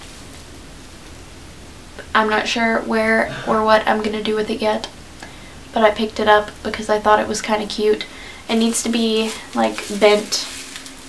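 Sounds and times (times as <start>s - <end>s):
faint room noise hiss: 0.0s - 11.0s.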